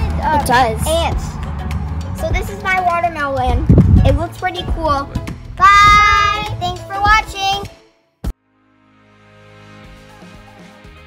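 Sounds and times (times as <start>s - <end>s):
girls calling sing-song goodbye: 5.6s - 7.7s.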